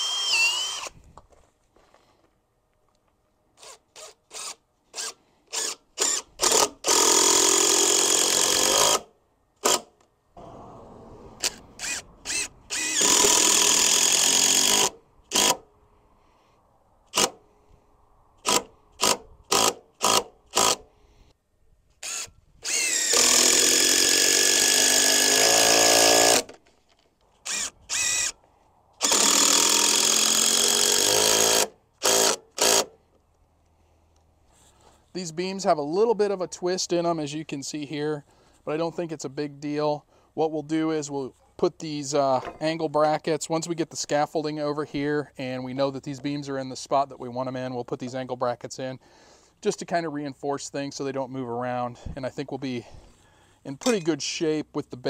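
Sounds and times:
drill driving screws into wood: 0:00.0 - 0:01.0, 0:03.6 - 0:10.0, 0:11.4 - 0:15.7, 0:17.1 - 0:17.4, 0:18.4 - 0:20.9, 0:22.0 - 0:26.6, 0:27.4 - 0:28.4, 0:29.0 - 0:33.0.

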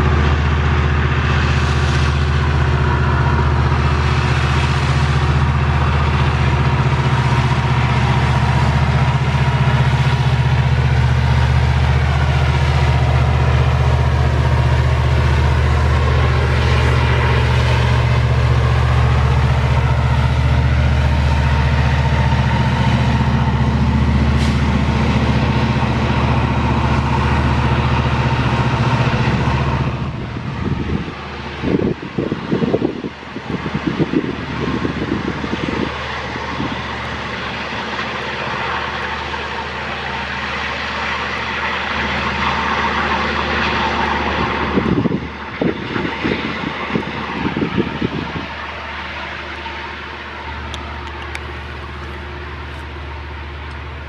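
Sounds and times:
diesel locomotive engine droning: 0:00.0 - 0:54.0
distant train rumble: 0:00.0 - 0:54.0
wind buffeting microphone: 0:00.0 - 0:54.0.

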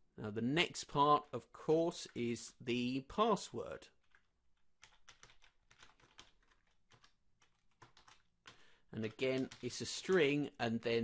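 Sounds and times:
computer keyboard typing: 0:04.0 - 0:10.6.

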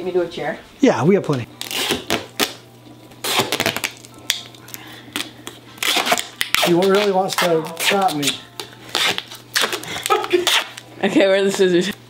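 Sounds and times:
duct tape ripping: 0:01.3 - 0:10.9.

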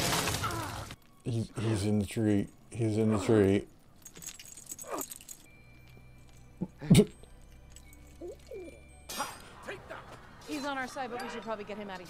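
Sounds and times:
faint jingling and clinking: 0:01.0 - 0:09.1, 0:10.5 - 0:12.0.

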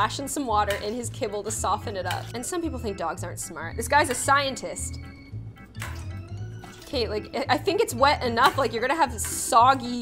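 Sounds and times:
background music with beat: 0:02.8 - 0:06.9.

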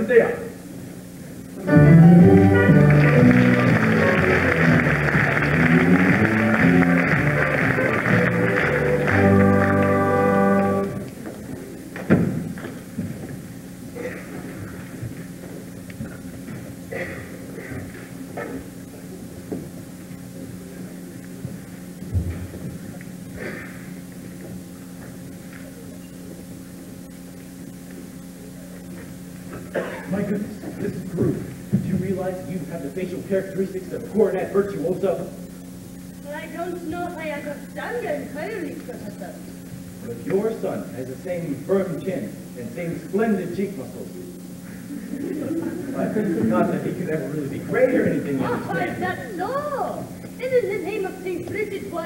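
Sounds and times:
steady low hum: 0:00.0 - 0:52.0
pit orchestra playing: 0:01.6 - 0:11.1.

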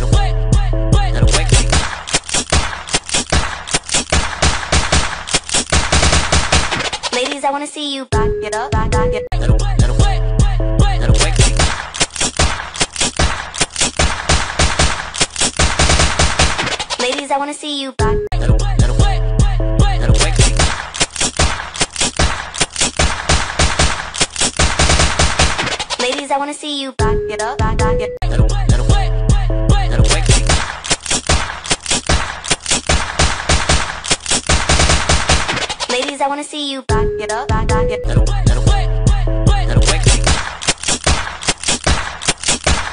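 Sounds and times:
dance track bass line: 0:00.0 - 0:01.8, 0:09.3 - 0:11.6, 0:18.1 - 0:20.6, 0:28.2 - 0:30.6, 0:38.0 - 0:40.4
dance song: 0:00.0 - 0:07.5, 0:08.2 - 0:15.1, 0:18.0 - 0:24.1, 0:27.0 - 0:36.2, 0:36.9 - 0:42.2
rapid gunfire effects: 0:01.3 - 0:07.4, 0:11.2 - 0:17.2, 0:20.2 - 0:26.2, 0:30.1 - 0:36.2, 0:39.9 - 0:42.9
sampled machine-gun fire: 0:01.7 - 0:06.9, 0:11.6 - 0:16.8, 0:20.6 - 0:25.7, 0:30.4 - 0:35.8, 0:40.3 - 0:42.9.

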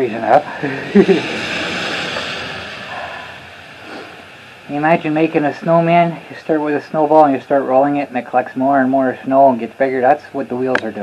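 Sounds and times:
man laughing: 0:00.4 - 0:02.0
breathy exhale: 0:00.4 - 0:04.7.

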